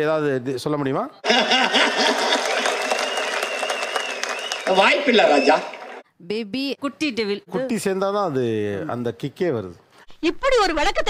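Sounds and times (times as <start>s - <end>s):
crowd applauding: 1.3s - 6.0s.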